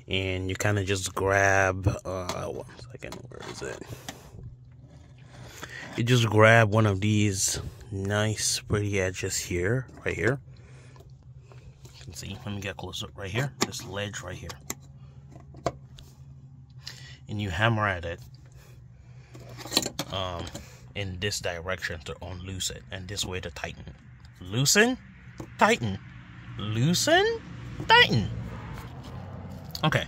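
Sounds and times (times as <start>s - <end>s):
low steady hum: 0.0s - 30.0s.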